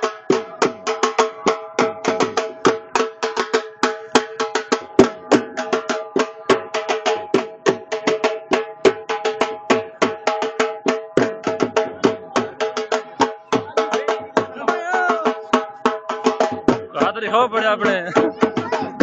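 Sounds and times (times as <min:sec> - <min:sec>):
barrel drum fast rhythm: 0:00.0 - 0:19.0.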